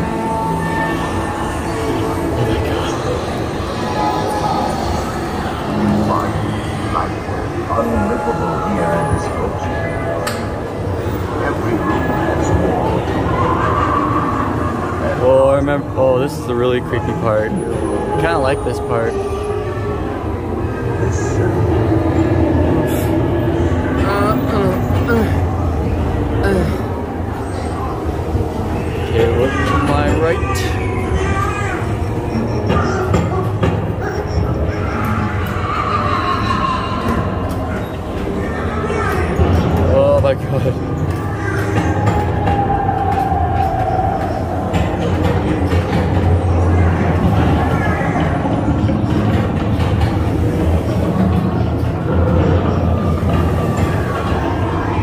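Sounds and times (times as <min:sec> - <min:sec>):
eerie wavering tones: 0:00.0 - 0:49.6
ride vehicle rumbling on track: 0:00.0 - 0:55.0.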